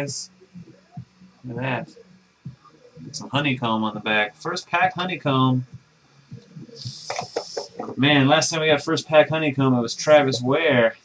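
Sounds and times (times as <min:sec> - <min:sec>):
short hiss: 0:06.8 - 0:07.8.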